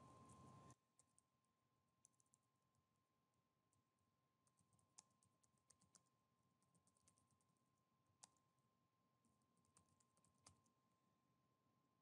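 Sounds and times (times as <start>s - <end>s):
faint steady high tone: 0.0s - 0.8s.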